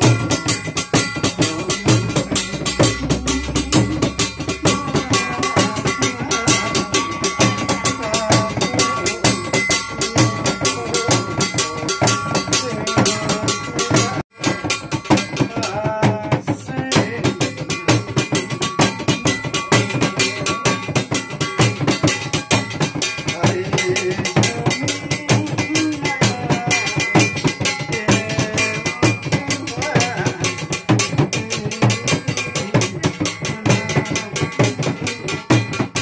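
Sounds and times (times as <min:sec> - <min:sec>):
frame drum beaten with stick: 0:00.0 - 0:36.0.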